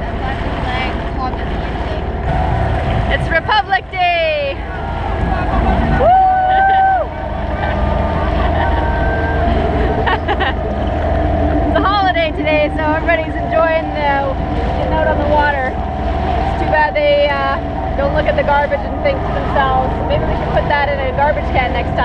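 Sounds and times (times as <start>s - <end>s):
outboard motor running: 0.0s - 22.0s
people talking and laughing: 0.0s - 22.0s
wind on microphone: 0.0s - 22.0s
flat tone: 7.0s - 22.0s.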